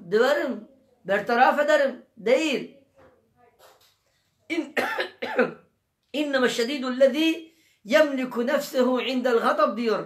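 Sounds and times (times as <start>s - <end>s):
man coughing and clearing throat: 4.6s - 5.7s.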